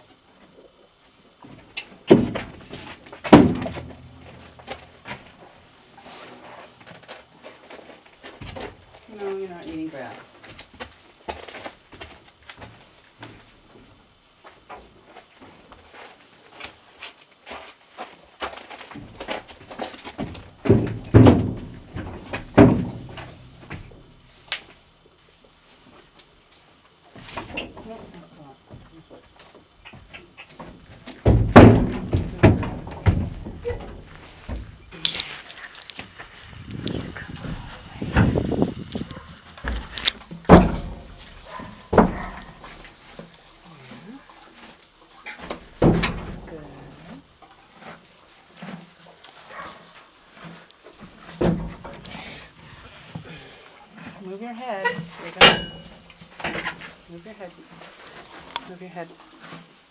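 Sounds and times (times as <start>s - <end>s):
horse hooves on trailer floor: 1.5s - 24.3s, 28.6s - 59.9s.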